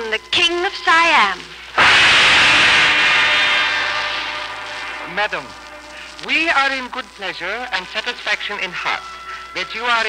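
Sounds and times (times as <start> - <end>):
gong ringing: 1.8 - 7.2.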